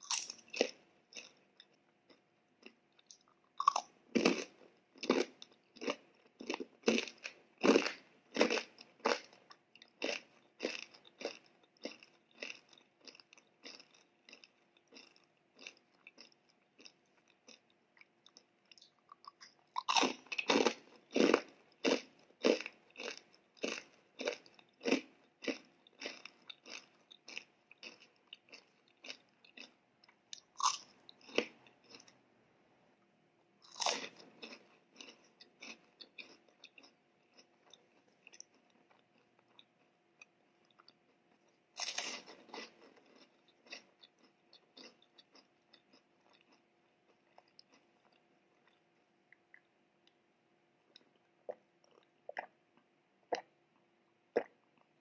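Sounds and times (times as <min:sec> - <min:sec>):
chewing crunchy fried snack: 0:00.0 - 0:32.2, 0:33.6 - 0:50.2, 0:50.8 - 0:55.0.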